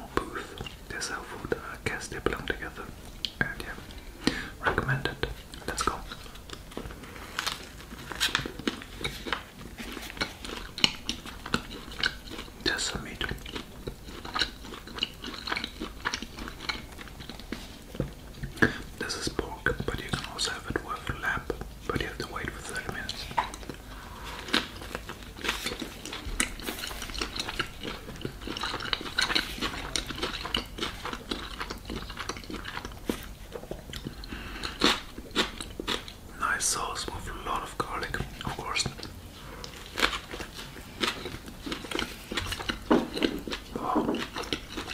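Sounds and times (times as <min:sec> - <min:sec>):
chewing and biting food: 0:05.2 - 0:36.3, 0:37.1 - 0:44.9.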